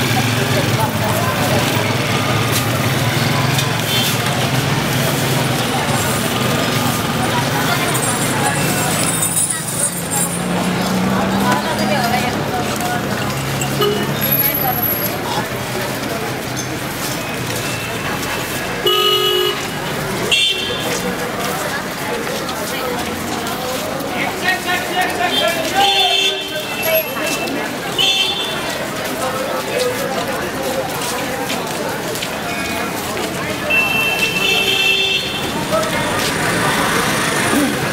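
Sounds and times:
crowd chatter: 0.0 - 37.9
people's voices: 0.0 - 37.9
street noise: 0.0 - 37.9
vehicle horn honking: 18.8 - 19.7, 20.3 - 20.9, 33.7 - 35.6.

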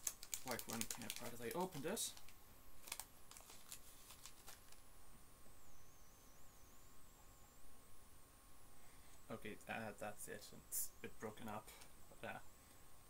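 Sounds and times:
wrapper rustling and clicking: 0.0 - 4.8
faint steady hum: 0.0 - 13.0.

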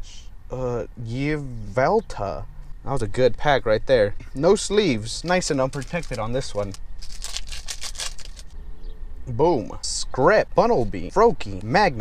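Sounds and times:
foil wrapper crinkling and tearing: 5.3 - 8.5.

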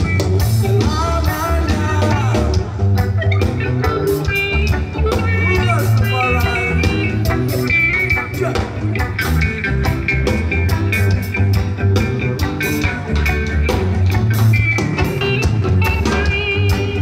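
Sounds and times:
bass line: 0.0 - 17.0
electric guitar: 0.0 - 17.0
reggae band playing live: 0.0 - 17.0
steady drumbeat: 0.0 - 17.0.

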